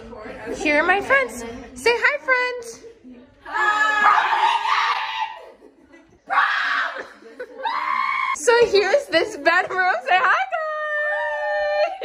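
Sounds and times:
girls shrieking and laughing: 3.5s - 8.4s.

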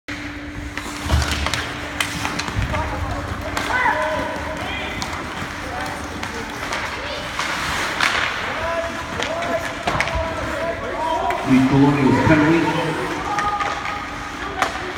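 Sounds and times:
hockey sticks clacking on puck: 0.7s - 11.5s, 13.2s - 14.9s
skate blades scraping on ice: 3.6s - 10.6s
people calling out: 11.4s - 13.8s.

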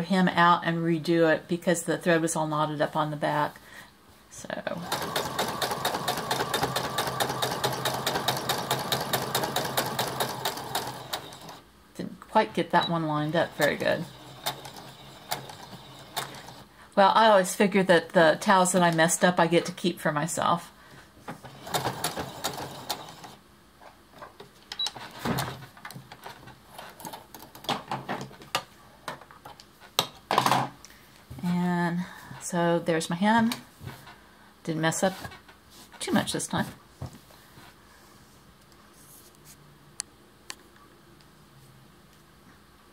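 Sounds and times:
sewing machine motor hum: 4.8s - 11.6s, 13.4s - 16.7s, 21.4s - 23.4s
sewing machine needle strokes: 4.8s - 11.6s, 13.5s - 16.6s.

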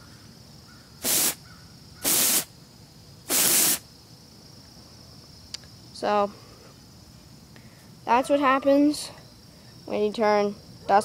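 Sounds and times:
aerosol can hissing sprays: 1.0s - 1.4s, 2.0s - 2.5s, 3.3s - 3.8s.

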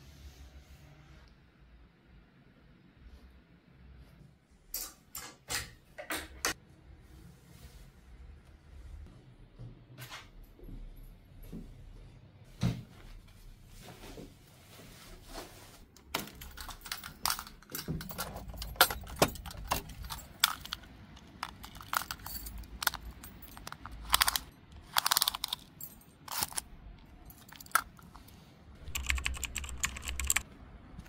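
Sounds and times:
hanging keys rattling: 16.0s - 30.4s.

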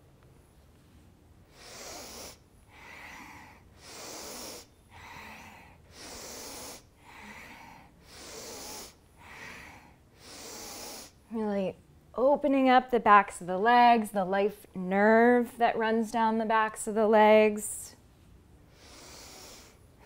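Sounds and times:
woman breathing: 1.4s - 11.3s, 18.6s - 20.0s.

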